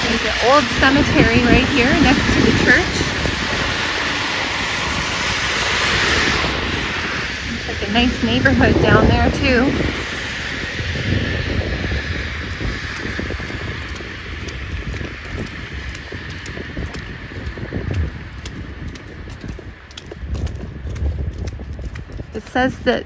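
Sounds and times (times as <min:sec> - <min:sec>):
wind rumbling on microphone: 0:00.0 - 0:23.0.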